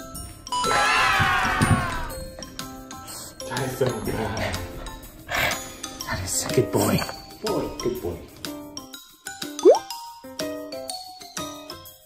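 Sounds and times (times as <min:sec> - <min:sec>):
light background music: 0:00.0 - 0:12.0
rising pop sound effect: 0:09.6 - 0:09.9.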